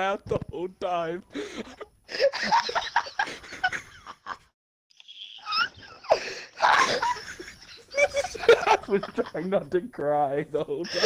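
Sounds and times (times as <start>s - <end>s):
people laughing and wheezing: 1.3s - 4.4s, 5.3s - 9.4s.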